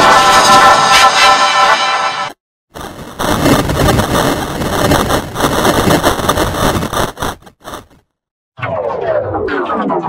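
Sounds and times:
brassy musical sting: 0:00.0 - 0:02.3
harsh distorted rumbling noise: 0:02.7 - 0:09.2.

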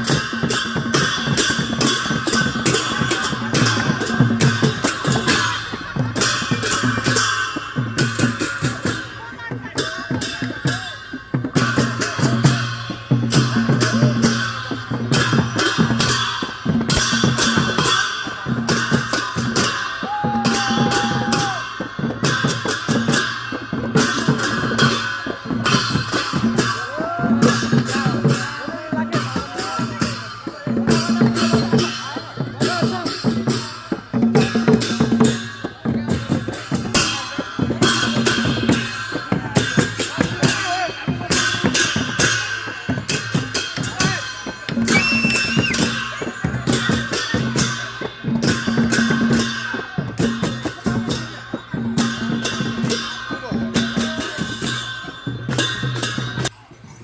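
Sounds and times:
drums beaten in fast rhythm: 0:00.0 - 0:57.0
hand cymbals clashing: 0:00.0 - 0:57.0
voices shouting: 0:20.0 - 0:21.8.

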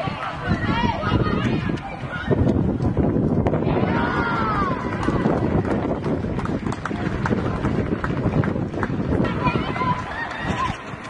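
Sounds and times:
crowd cheering and shouting: 0:00.0 - 0:07.8, 0:09.0 - 0:11.0
dense low rumble: 0:00.5 - 0:11.0.

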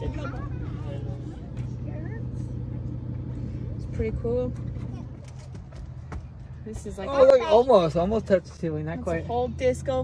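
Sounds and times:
faint voices: 0:00.0 - 0:05.6
engine idling: 0:00.0 - 0:10.0.

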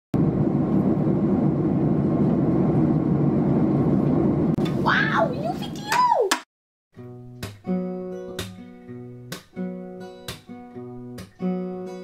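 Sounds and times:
airliner cabin engine rumble: 0:00.2 - 0:05.9.

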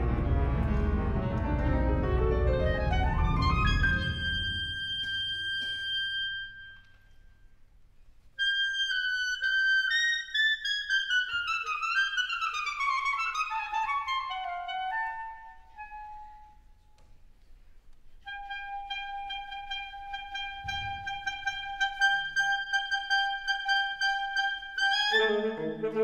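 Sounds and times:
wind ensemble playing: 0:00.0 - 0:06.6, 0:18.2 - 0:26.0.

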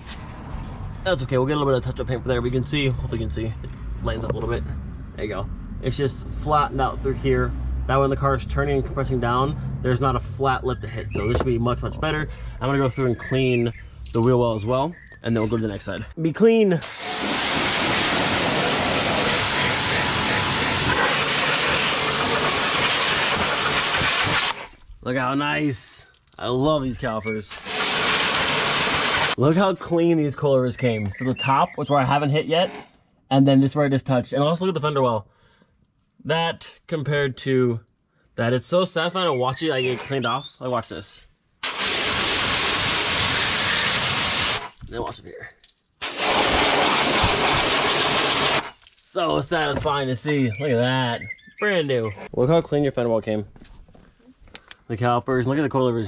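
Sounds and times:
pressure washer spraying water: 0:16.8 - 0:24.6, 0:27.5 - 0:29.4, 0:41.6 - 0:44.7, 0:46.0 - 0:48.7.

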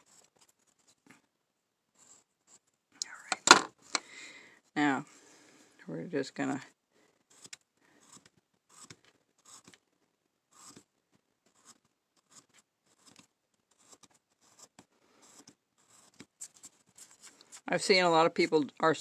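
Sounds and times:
carving tool scraping wood: 0:00.0 - 0:01.2, 0:01.9 - 0:02.7, 0:07.2 - 0:09.9, 0:10.5 - 0:18.6.

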